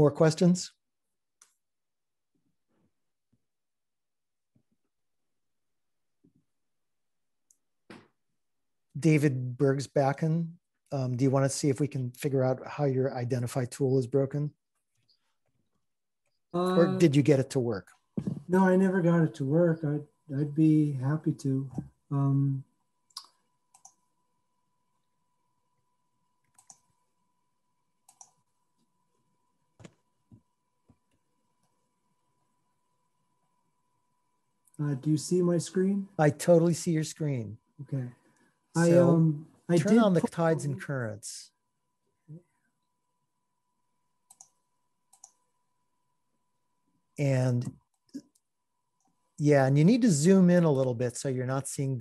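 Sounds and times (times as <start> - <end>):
faint steady high tone: 16.6 - 22.6, 38.8 - 41.4
computer mouse clicks: 23.1 - 24.0, 26.4 - 26.9, 28.0 - 28.4, 44.3 - 45.4.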